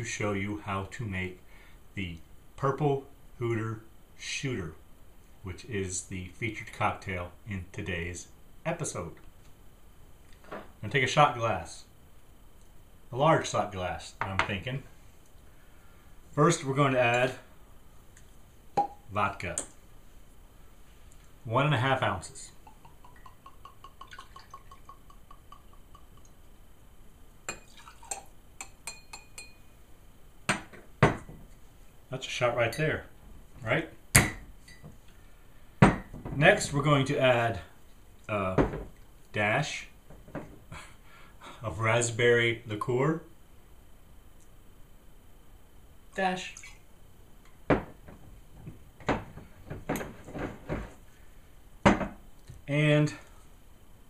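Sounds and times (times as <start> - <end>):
glass bottles clunking on countertop: 51.9 - 52.2.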